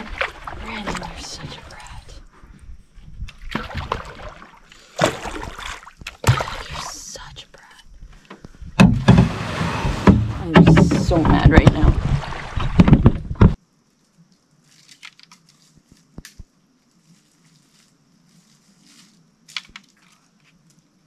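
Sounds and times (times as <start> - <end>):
low rumbling: 8.6 - 13.6
paddle strokes in water: 9.1 - 13.6.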